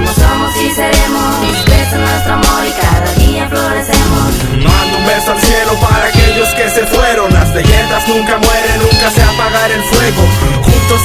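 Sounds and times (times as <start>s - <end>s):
hip hop beat with drums and bass: 0.0s - 11.0s.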